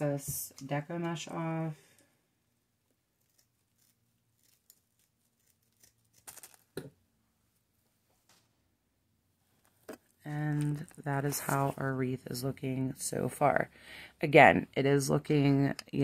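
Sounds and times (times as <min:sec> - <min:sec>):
scissors snipping: 0:03.2 - 0:06.6.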